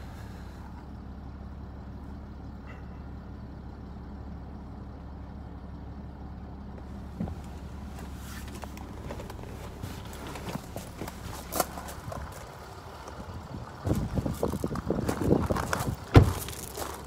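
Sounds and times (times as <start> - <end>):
car engine idling: 0.0 - 17.0.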